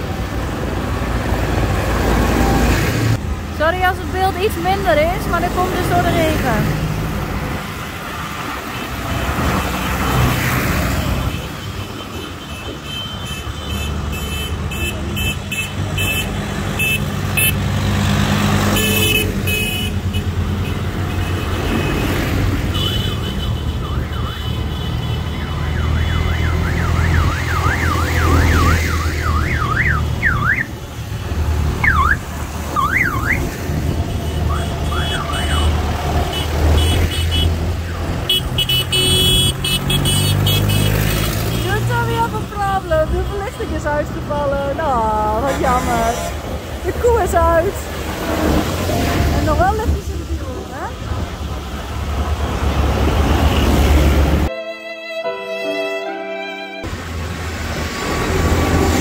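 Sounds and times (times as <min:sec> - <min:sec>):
tractor diesel engines droning: 0:00.0 - 0:54.6
warbling siren-like horn: 0:23.7 - 0:30.7.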